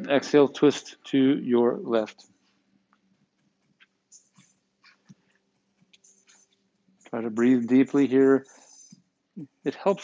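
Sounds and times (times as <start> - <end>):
faint steady hum: 0.0 - 10.0
soft clicks and rustles: 2.1 - 7.2.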